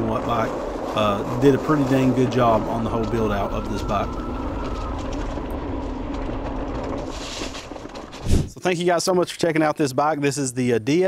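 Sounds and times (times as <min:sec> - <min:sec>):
faint steady whine: 0:00.0 - 0:07.7
bike tyre and frame rumble: 0:00.0 - 0:08.6
wind on microphone: 0:08.2 - 0:08.6.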